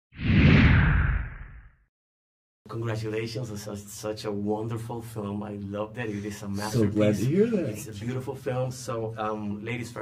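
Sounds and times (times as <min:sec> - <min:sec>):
whoosh with low rumble: 0:00.2 - 0:01.8.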